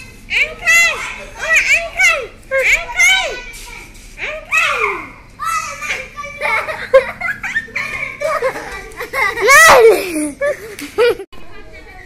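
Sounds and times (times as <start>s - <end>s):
children calling out: 0.0s - 10.6s.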